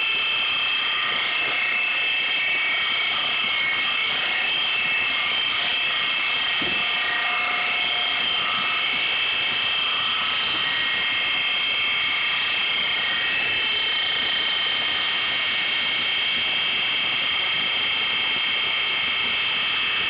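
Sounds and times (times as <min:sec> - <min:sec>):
high steady whining tones: 0:00.0 - 0:20.0.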